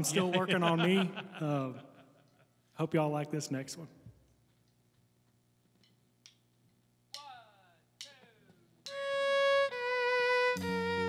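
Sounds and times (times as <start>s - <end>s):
fiddle note: 8.9s - 11.0s.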